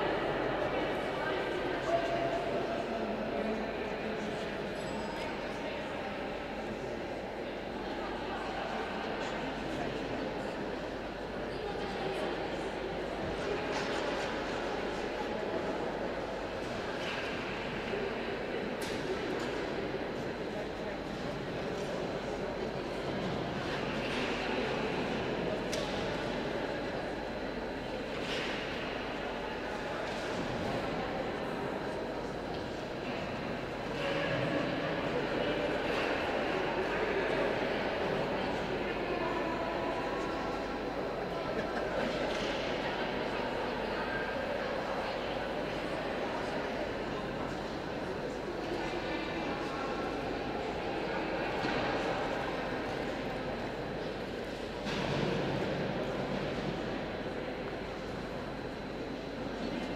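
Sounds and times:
indistinct background chatter: 0:00.0 - 0:59.9.

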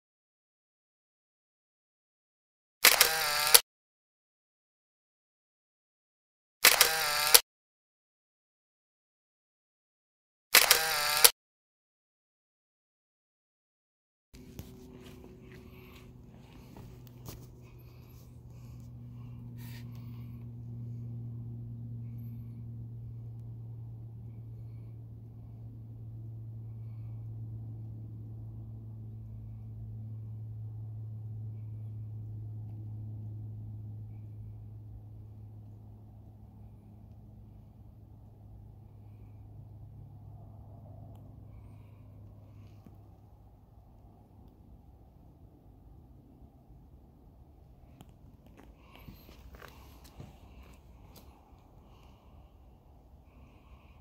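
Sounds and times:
steady low hum: 0:14.4 - 0:54.0
sharp clicks and rustles: 0:47.9 - 0:52.3.

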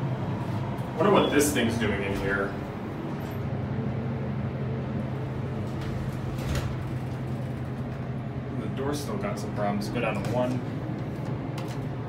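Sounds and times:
elevator humming: 0:00.0 - 0:12.0.

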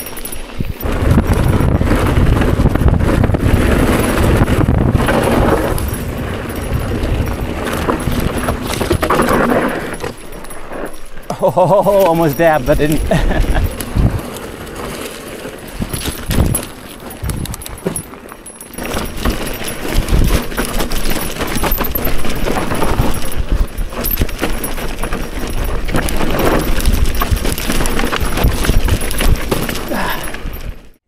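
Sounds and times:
wind on microphone: 0:00.0 - 0:09.8, 0:12.6 - 0:14.7, 0:15.7 - 0:18.1
bike rattling and knocking: 0:00.0 - 0:31.0
bike tyres crunching over dirt: 0:00.0 - 0:31.0.

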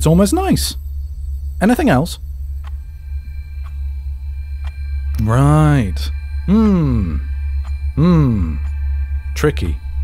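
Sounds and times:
low steady drone: 0:00.0 - 0:10.0.

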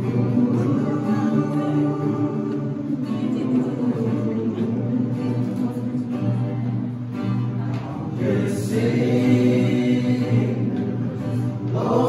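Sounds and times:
men singing gospel song: 0:00.0 - 0:06.1, 0:08.0 - 0:12.0
strummed acoustic guitar: 0:00.0 - 0:12.0.

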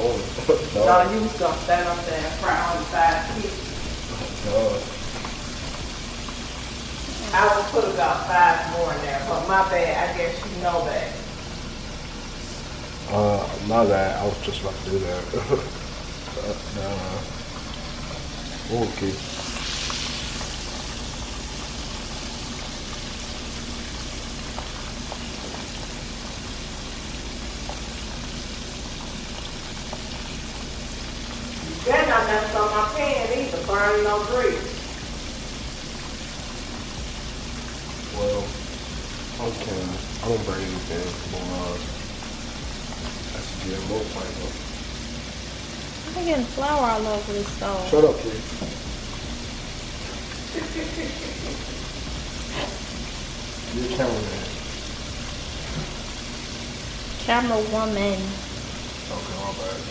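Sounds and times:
chicken frying in hot grease: 0:00.0 - 0:59.9.

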